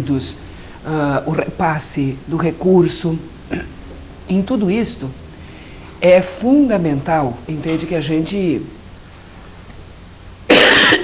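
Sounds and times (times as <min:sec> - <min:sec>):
woman coughing loudly: 0:10.5 - 0:11.0.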